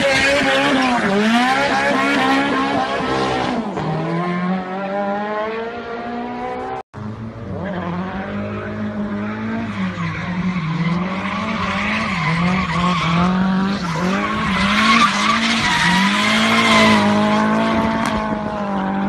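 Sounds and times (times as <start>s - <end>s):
car engine revving high: 0.0s - 19.0s
tyre squeal and skidding: 9.5s - 18.2s.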